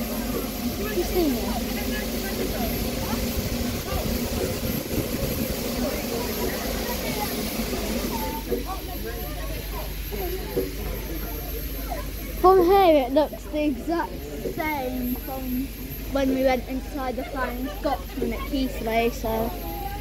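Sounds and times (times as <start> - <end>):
steam locomotive hissing: 0.0 - 20.0.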